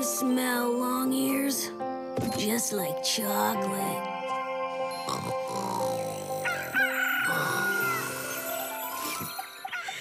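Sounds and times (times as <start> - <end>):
soft music: 0.0 - 10.0.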